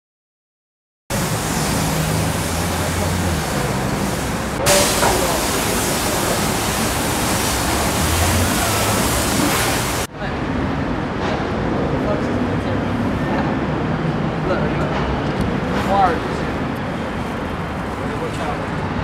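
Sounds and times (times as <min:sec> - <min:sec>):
pressure washer spray hissing: 0:01.1 - 0:10.1.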